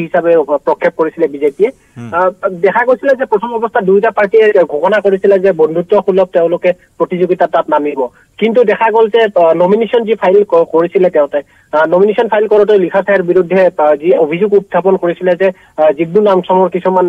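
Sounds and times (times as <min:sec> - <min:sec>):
person talking over telephone: 0:01.3 - 0:02.3.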